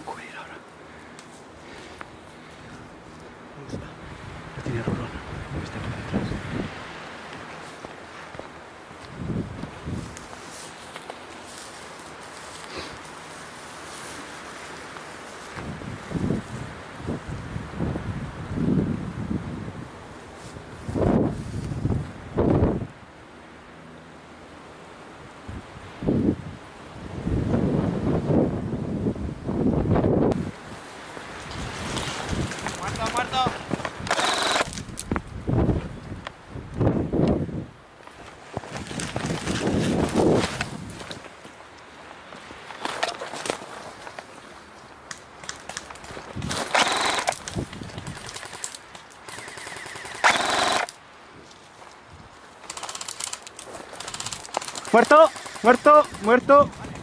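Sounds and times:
distant voices calling out: 0.0s - 6.5s, 54.7s - 57.0s
rustling through dry scrub: 5.7s - 16.8s, 20.2s - 22.0s, 30.4s - 35.9s, 38.0s - 57.0s
airsoft guns firing bursts: 34.1s - 34.8s, 46.5s - 47.4s, 48.0s - 51.0s, 52.7s - 56.4s.

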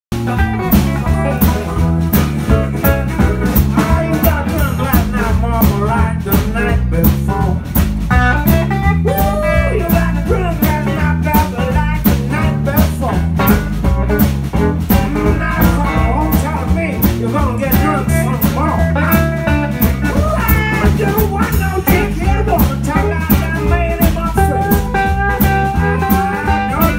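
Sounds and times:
drum kit on steady beat: 0.1s - 26.9s
electric bass: 0.1s - 26.9s
electric guitar: 0.1s - 26.9s
person singing: 0.3s - 7.7s, 8.6s - 13.4s, 14.9s - 26.9s.

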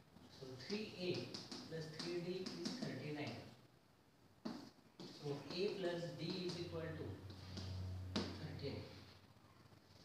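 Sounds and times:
chalk tapping on a blackboard: 0.2s - 3.4s, 4.4s - 8.4s.

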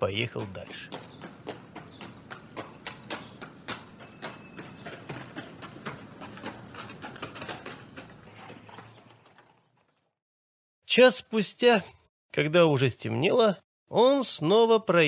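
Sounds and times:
horse hooves clip-clopping: 0.0s - 10.1s.

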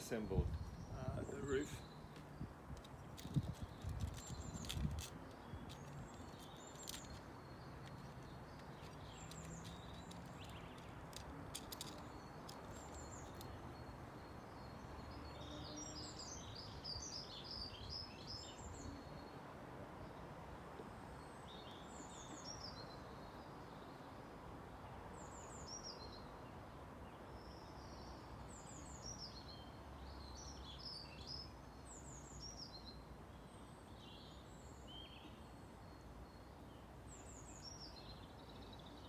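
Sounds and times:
small birds chirping: 0.0s - 19.3s, 24.8s - 39.0s
faint outdoor hiss: 0.0s - 39.0s
clicks and knocks of handling tools: 2.1s - 13.5s.

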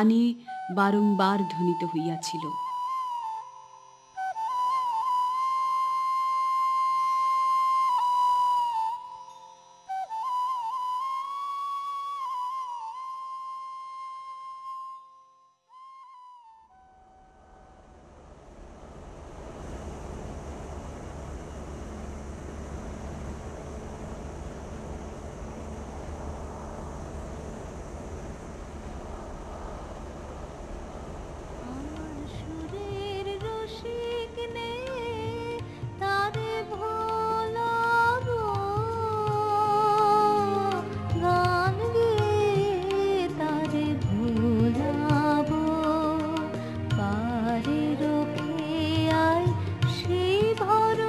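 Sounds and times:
flute holding a long note: 0.0s - 18.0s
sustained drone: 17.3s - 36.6s.

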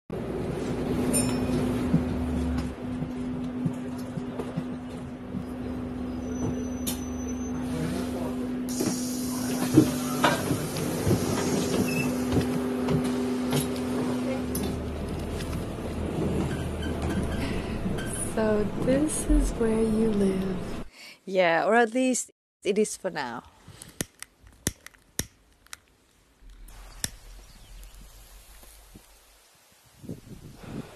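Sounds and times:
bus engine hum: 0.1s - 20.9s
low rumble: 17.2s - 20.9s, 26.4s - 30.9s.

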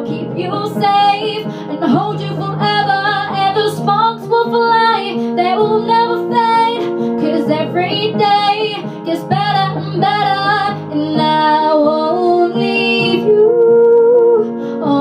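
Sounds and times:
girl singing pop ballad: 0.0s - 15.0s
instrumental backing track: 0.0s - 15.0s.

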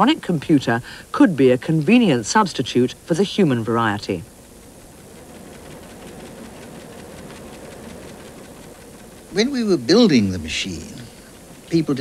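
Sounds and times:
rapid steady clicking: 0.0s - 12.0s
hiss: 0.5s - 1.5s.

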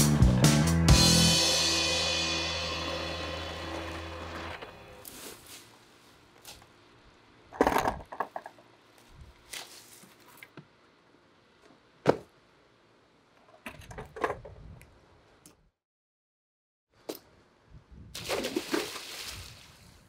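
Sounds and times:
backing track chord ringing: 0.1s - 5.0s.

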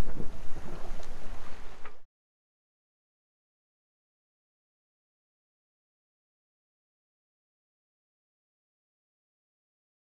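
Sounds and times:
water rushing along a hull: 0.0s - 2.0s
wind buffeting microphone: 0.0s - 2.1s.

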